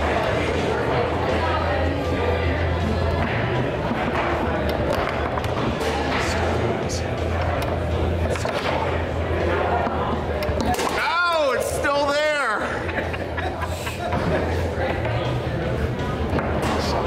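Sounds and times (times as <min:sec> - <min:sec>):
hall chatter: 0:00.0 - 0:17.0
foosball ball clacking: 0:03.1 - 0:06.5.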